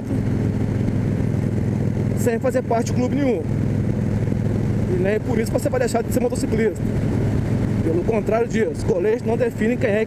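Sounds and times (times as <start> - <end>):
motorcycle engine cruising: 0.0 - 10.0
road noise: 0.0 - 10.0
rushing wind: 0.0 - 10.0.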